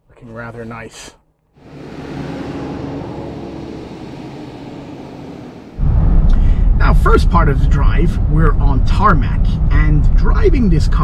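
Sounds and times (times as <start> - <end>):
car engine and road hum: 1.4 - 11.0.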